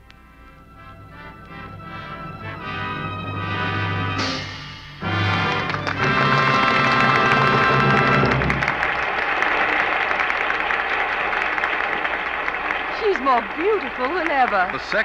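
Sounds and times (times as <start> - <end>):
orchestral music with brass: 0.1 - 9.1
audience applauding: 5.0 - 15.0.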